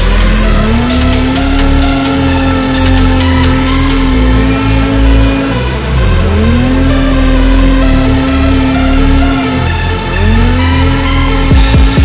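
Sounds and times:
electronic music with beat: 0.0 - 12.0
snowmobile engine revving: 0.0 - 12.0.

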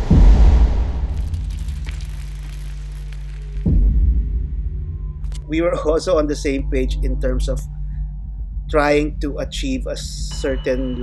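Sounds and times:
noisy whoosh: 0.0 - 2.0
deep boom: 0.0 - 2.5, 3.3 - 5.5
low steady drone: 3.7 - 11.0.

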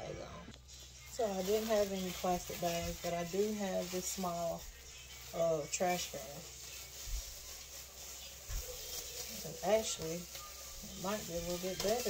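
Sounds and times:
plastic bag rustling and crinkling: 0.5 - 12.0.

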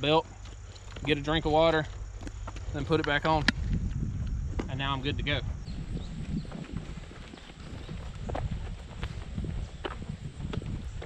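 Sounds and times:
wind rumble on microphone: 0.0 - 11.0
footsteps on asphalt: 0.1 - 11.0.

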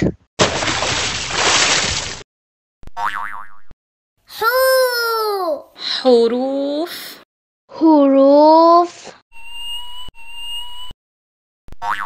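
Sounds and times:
electronic beeps: 9.4 - 10.9.

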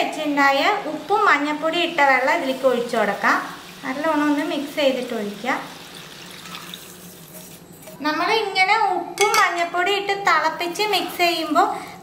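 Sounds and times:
water pouring into a pot: 1.9 - 7.6.

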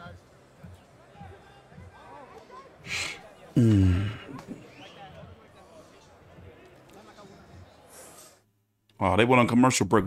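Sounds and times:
faint background speech: 0.0 - 8.5.

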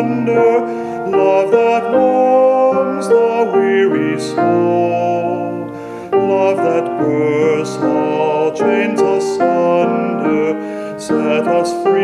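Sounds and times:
person singing hymn: 0.0 - 12.0
sustained piano chords: 0.0 - 12.0.

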